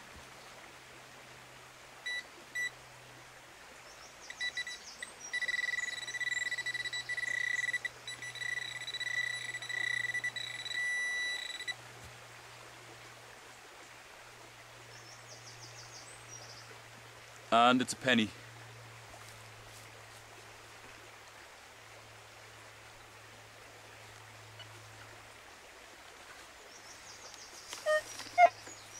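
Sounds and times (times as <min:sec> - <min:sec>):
metal detector beeps: 0:02.1 - 0:02.7, 0:04.3 - 0:11.8, 0:27.8 - 0:28.5
pulsing high-pitched alert tone: 0:04.3 - 0:11.7.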